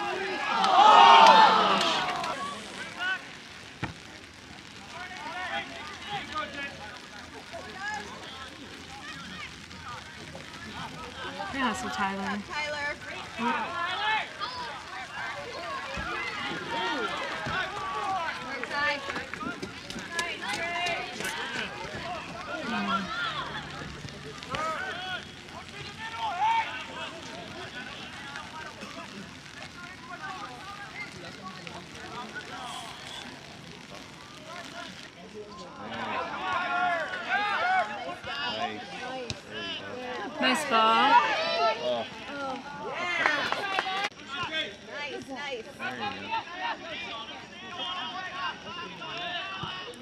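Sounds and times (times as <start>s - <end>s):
people shouting: 0.0s - 3.3s, 11.0s - 33.4s, 35.7s - 44.0s
mixed chatter: 0.0s - 50.0s.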